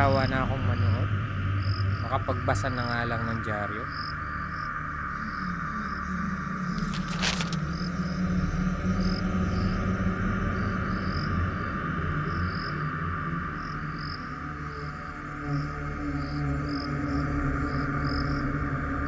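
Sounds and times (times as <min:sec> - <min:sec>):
crickets chirping: 0:00.5 - 0:19.0
newspaper rustling: 0:06.7 - 0:07.9.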